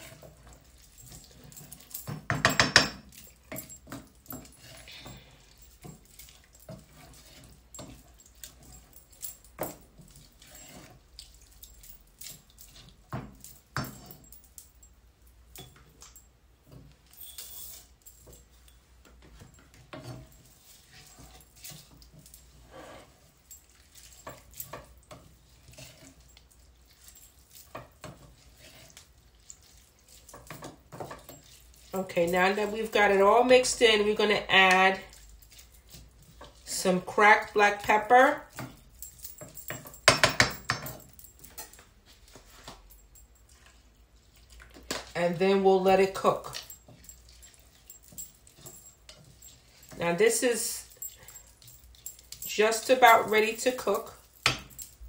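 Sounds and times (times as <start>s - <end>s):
spoon scraping a pot: 0.0s - 8.9s, 9.6s - 11.5s, 17.0s - 18.8s, 19.4s - 42.9s, 43.5s - 54.7s.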